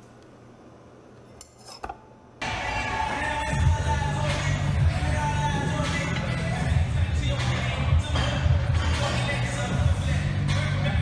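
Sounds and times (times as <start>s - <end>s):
loud background music: 2.4s - 11.0s.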